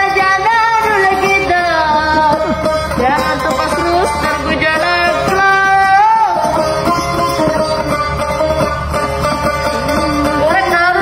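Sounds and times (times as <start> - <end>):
plucked lute melody: 0.0 - 11.0.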